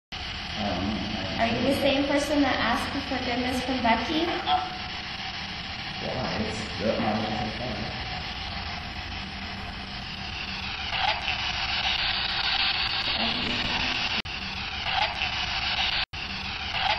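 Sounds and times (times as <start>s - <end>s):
low hum: 0.2s - 14.8s
heavy hiss and static: 0.2s - 16.9s.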